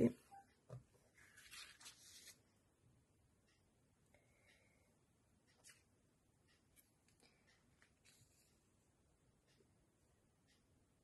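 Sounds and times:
card and paper rustling: 1.2 - 2.4, 7.1 - 8.5.

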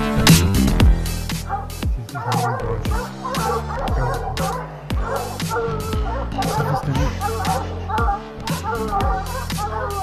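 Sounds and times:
electronic music with bass and beat: 0.0 - 10.0
hounds barking: 1.1 - 10.0.

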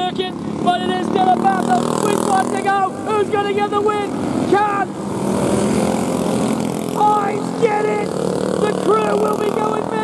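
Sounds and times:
go-kart engine passing: 0.0 - 10.0.

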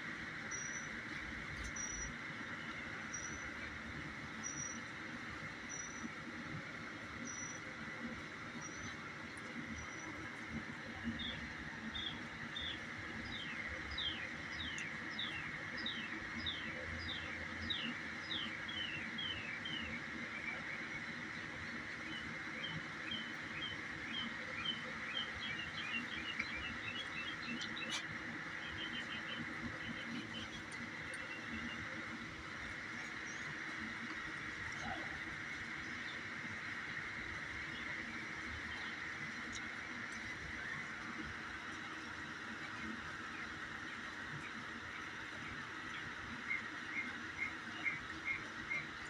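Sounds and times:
birds chirping: 7.2 - 43.8.

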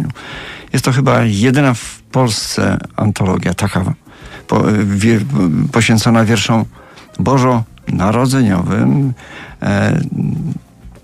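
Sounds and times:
man's drawn-out hesitation sound: 4.3 - 10.6.

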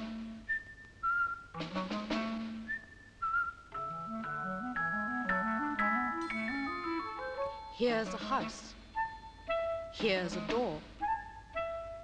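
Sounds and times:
ringing tuned percussion notes: 3.8 - 10.4.

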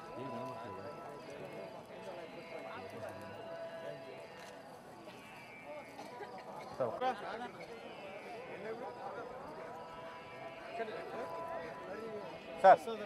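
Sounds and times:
crowd babble: 0.0 - 13.0.

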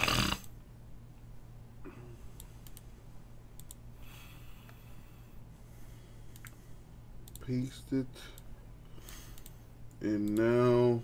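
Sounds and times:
low steady hum: 0.0 - 11.0
computer mouse clicks: 2.4 - 2.9, 3.5 - 3.8, 6.3 - 6.6, 7.2 - 7.5, 8.4 - 10.6.

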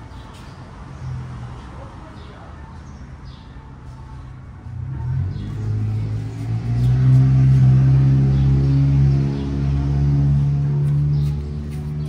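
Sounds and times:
low engine-like hum: 3.4 - 12.0.

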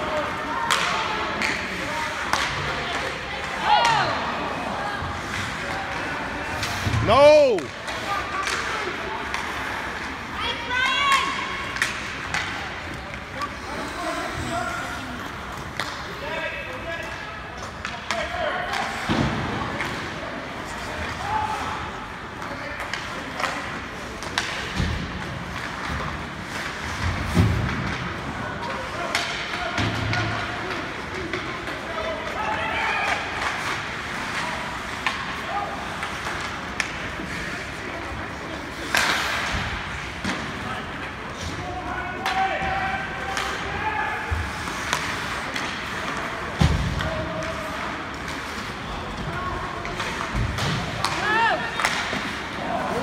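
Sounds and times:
hockey sticks and puck clacking: 0.0 - 53.0
steady rink din: 0.0 - 53.0.

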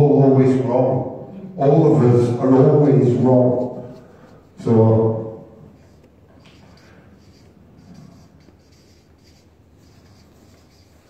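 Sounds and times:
marker pen scratching on paper: 3.0 - 4.6, 5.7 - 11.0.

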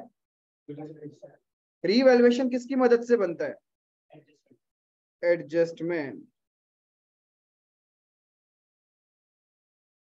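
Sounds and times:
man speaking: 0.0 - 6.5.

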